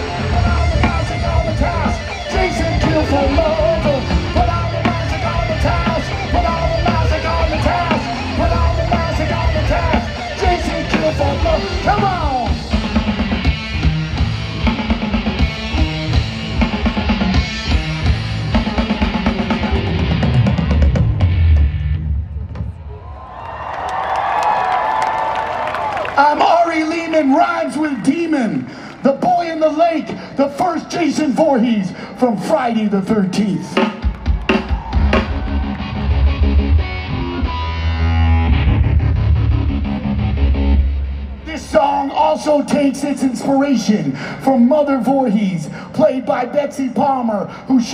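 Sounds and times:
electric guitar: 0.0 - 22.6, 33.8 - 41.7
hard rock band playing: 0.0 - 22.9, 33.7 - 47.9
drum kit: 0.0 - 23.2, 33.8 - 40.9.

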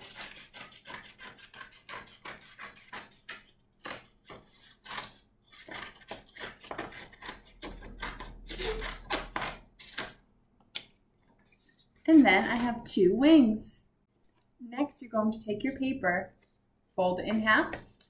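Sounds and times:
scissors cutting paper: 0.0 - 10.2, 12.1 - 12.9.

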